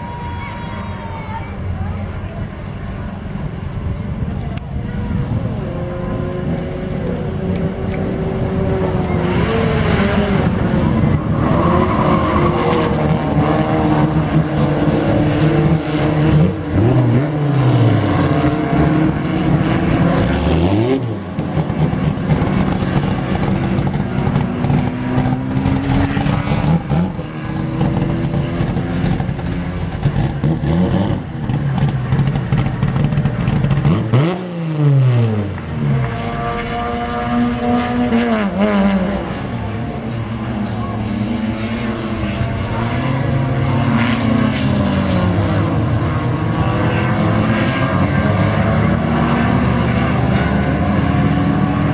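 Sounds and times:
race car engines passing: 0:00.0 - 0:51.9.

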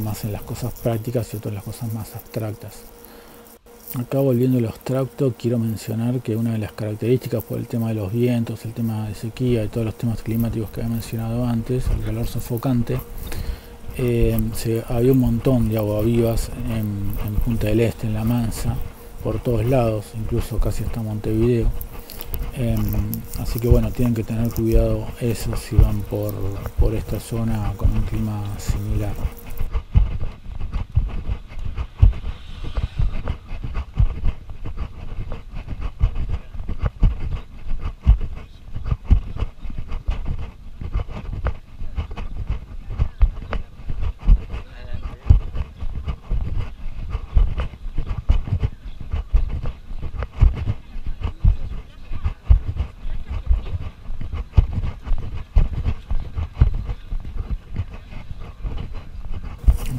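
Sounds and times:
wind buffeting microphone: 0:27.7 - 0:59.9.

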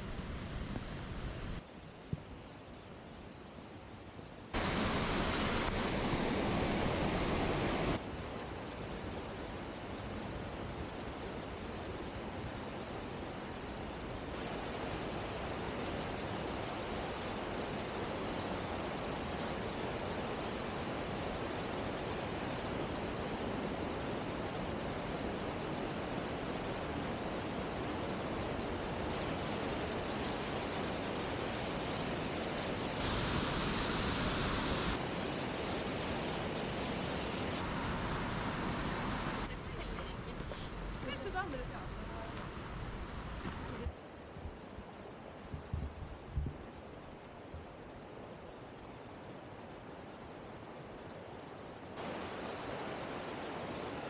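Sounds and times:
river rushing over rapids: 0:04.6 - 0:10.4, 0:13.6 - 0:44.3, 0:47.9 - 0:54.0.

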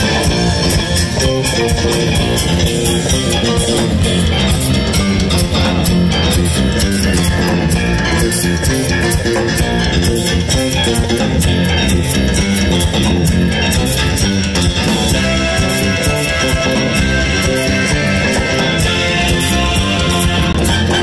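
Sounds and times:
bass guitar: 0:00.0 - 0:21.0
drum kit: 0:00.0 - 0:21.0
electric guitar: 0:00.0 - 0:21.0
keyboard: 0:00.0 - 0:21.0.

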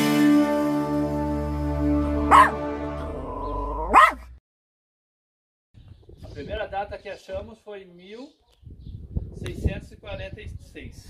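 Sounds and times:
intro jingle music: 0:00.0 - 0:03.8
dog barking: 0:02.3 - 0:02.6, 0:03.8 - 0:04.4.

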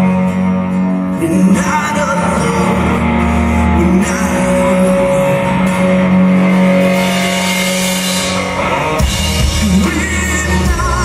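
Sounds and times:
bass guitar: 0:00.0 - 0:11.0
electric guitars: 0:00.0 - 0:11.0
drum kit: 0:05.4 - 0:11.0.

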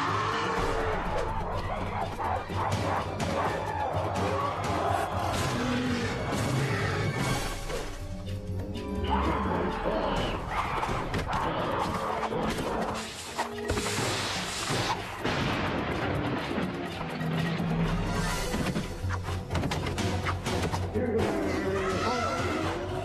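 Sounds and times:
cartoon action music: 0:00.0 - 0:08.2.

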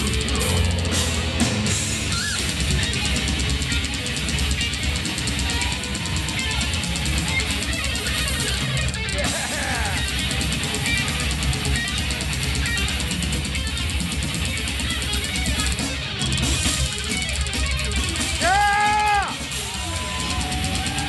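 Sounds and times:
death metal band playing live: 0:00.0 - 0:21.0.

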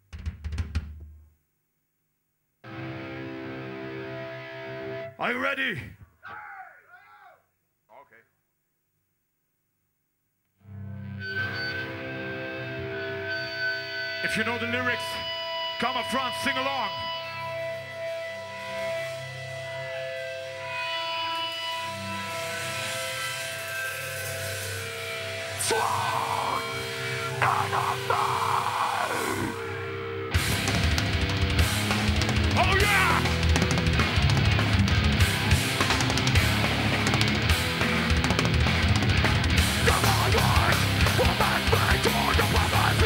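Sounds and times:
electric guitars and bass sustained notes: 0:10.6 - 0:28.4, 0:29.0 - 0:43.0.

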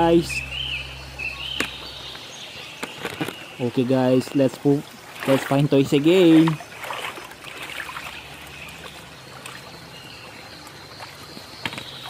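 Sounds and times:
low hum: 0:00.0 - 0:02.7
high warbling chirp: 0:00.0 - 0:05.4.

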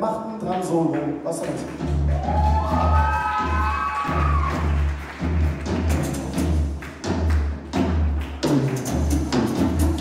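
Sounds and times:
low bass notes: 0:01.3 - 0:10.0.

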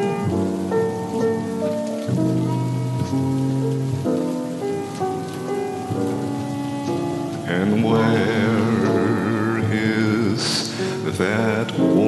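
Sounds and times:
rain hissing: 0:00.0 - 0:12.0
slow jazz ballad music: 0:00.0 - 0:12.0.

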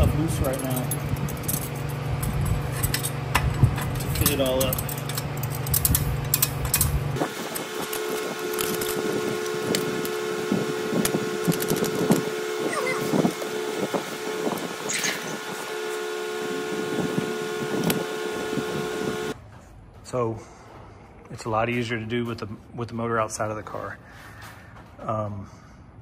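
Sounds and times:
steady hum: 0:00.0 - 0:19.4.

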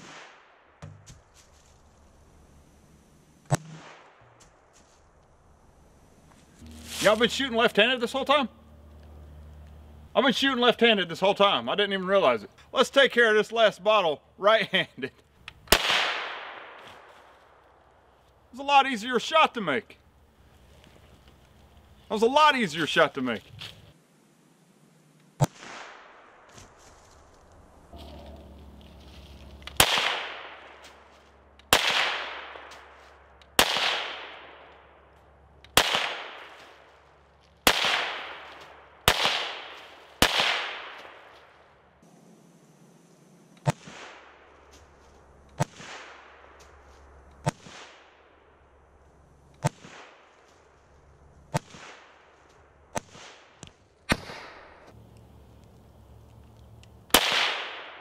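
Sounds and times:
rifle shots echoing: 0:00.0 - 0:00.8, 0:03.5 - 0:04.2, 0:15.7 - 0:16.8, 0:29.8 - 0:30.8, 0:31.7 - 0:33.0, 0:33.6 - 0:34.7, 0:35.8 - 0:36.6, 0:37.6 - 0:41.4, 0:57.1 - 0:58.0.

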